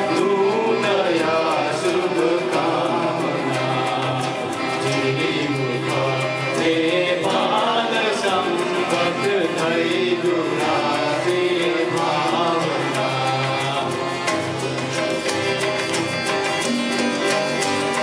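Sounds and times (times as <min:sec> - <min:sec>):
group singing: 0:00.0 - 0:18.0
harmonium low notes: 0:00.0 - 0:18.0.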